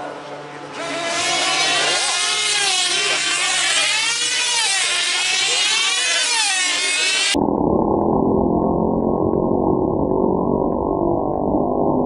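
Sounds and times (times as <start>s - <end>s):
model aircraft engines whining: 0.7s - 7.4s.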